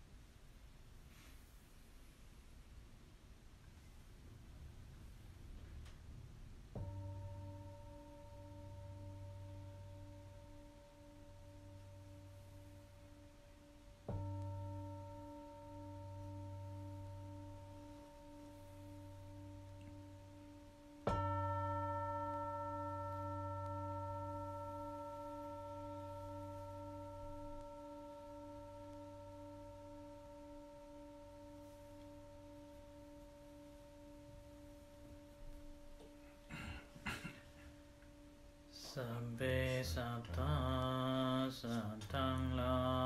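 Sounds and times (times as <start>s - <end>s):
meditation bell ringing: 6.7s - 36.8s, 37.5s - 43.0s.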